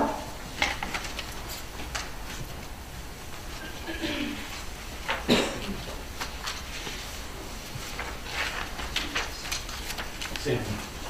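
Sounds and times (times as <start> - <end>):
paper rustling: 0.6 - 3.8, 4.4 - 11.0.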